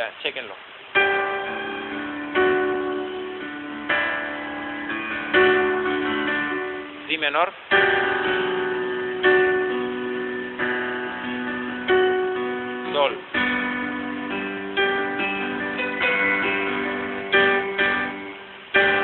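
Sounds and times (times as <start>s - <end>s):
electronic keyboard chords: 0.9s - 19.0s.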